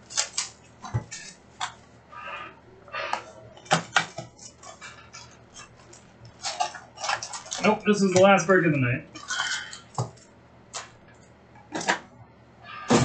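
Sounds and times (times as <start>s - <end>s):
shrink wrap tearing: 0.0s - 1.7s, 5.6s - 7.9s
foil packs crinkling: 0.0s - 1.8s, 3.6s - 8.1s, 9.2s - 11.0s.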